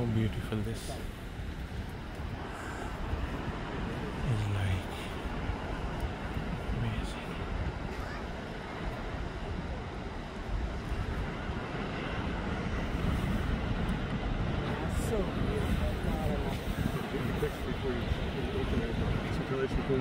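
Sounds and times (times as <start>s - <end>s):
surf breaking over rocks: 0.0s - 20.0s
wind on microphone: 0.0s - 20.0s.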